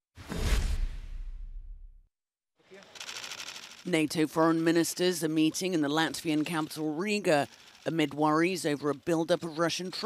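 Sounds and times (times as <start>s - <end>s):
fast run of clicks: 2.8s - 4.1s, 6.1s - 8.2s.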